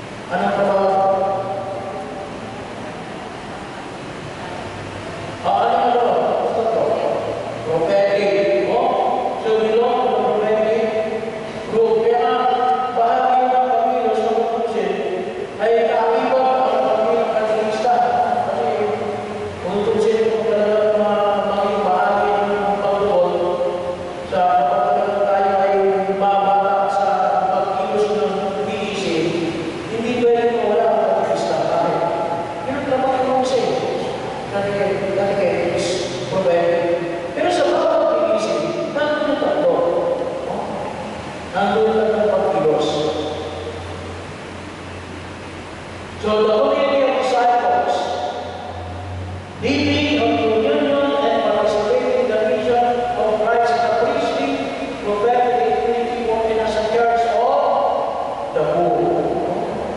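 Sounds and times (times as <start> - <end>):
electric fans rushing: 0.0 - 59.9.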